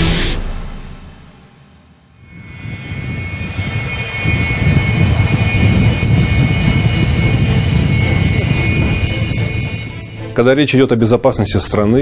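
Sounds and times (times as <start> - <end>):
jet engines with high whine: 2.2 - 11.2.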